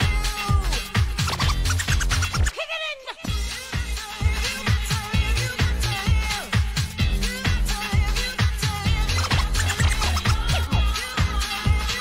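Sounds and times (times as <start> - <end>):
house dance track: 0.0 - 12.0
record scratching: 1.1 - 2.7, 8.9 - 11.0.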